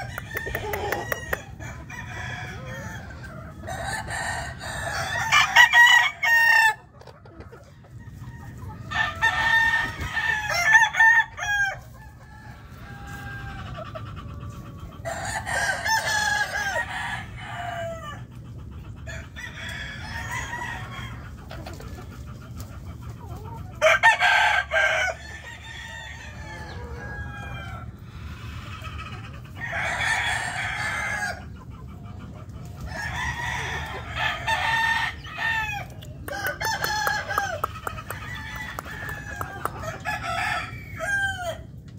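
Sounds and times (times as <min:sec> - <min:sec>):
distant roosters crowing: 0:00.0 - 0:22.0, 0:23.6 - 0:41.9
roosters crowing: 0:00.0 - 0:41.9.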